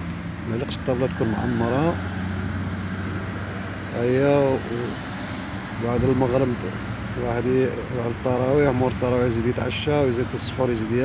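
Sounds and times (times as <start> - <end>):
traffic engine drone: 0.0 - 11.0
man's voice: 0.5 - 2.0.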